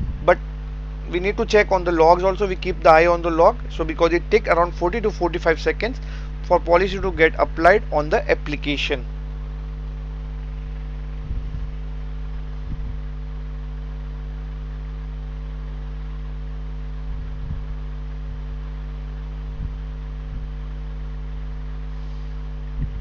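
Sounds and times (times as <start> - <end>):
soft low thumps: 0.0 - 0.6, 6.0 - 8.5, 9.3 - 14.4, 16.9 - 20.7, 22.4 - 23.0
electrical mains hum: 0.0 - 23.0.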